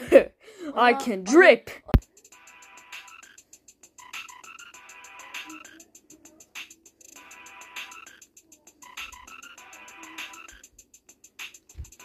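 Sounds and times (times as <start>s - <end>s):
repeating croaking: 4.0s - 5.8s, 8.8s - 10.6s.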